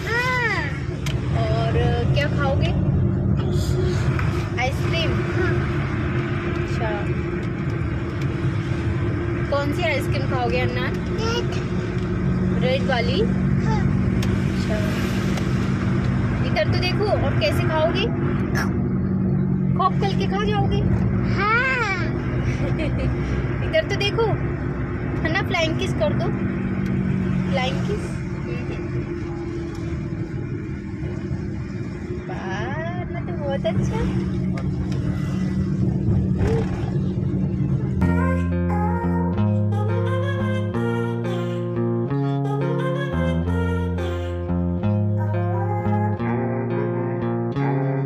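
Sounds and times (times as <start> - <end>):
car engine and road hum: 0.0 - 48.0.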